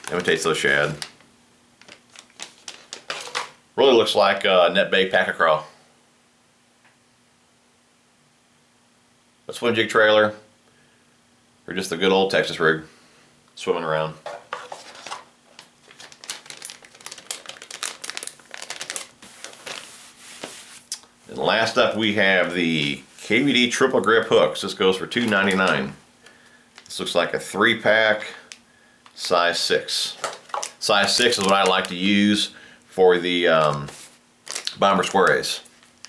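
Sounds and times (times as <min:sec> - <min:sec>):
plastic packaging crinkling: 0:00.0 - 0:03.6, 0:14.3 - 0:21.7, 0:25.0 - 0:27.1, 0:30.1 - 0:32.3, 0:33.2 - 0:36.0.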